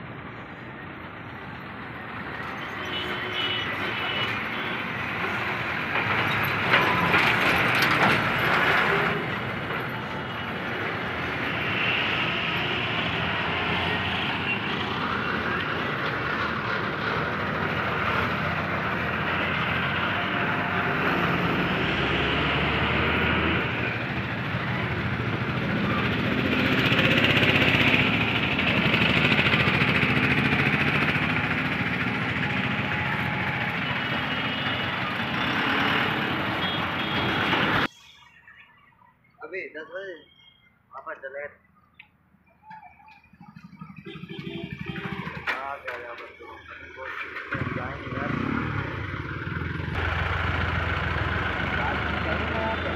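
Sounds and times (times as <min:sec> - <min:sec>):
highway traffic: 0:00.0 - 0:52.9.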